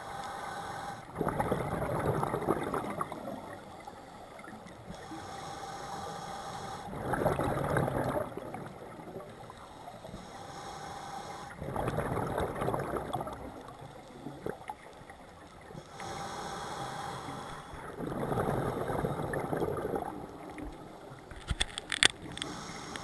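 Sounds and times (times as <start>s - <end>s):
diver inhaling through regulator: 0.0s - 1.2s, 3.5s - 7.8s, 9.5s - 12.1s, 15.8s - 19.8s, 22.3s - 23.0s
exhaled bubbles rushing: 1.1s - 3.5s, 6.9s - 9.3s, 11.6s - 13.7s, 17.8s - 20.7s.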